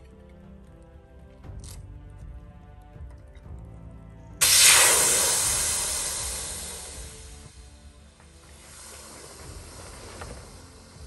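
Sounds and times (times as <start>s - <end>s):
air hissing out of valve: 4.4s - 11.0s.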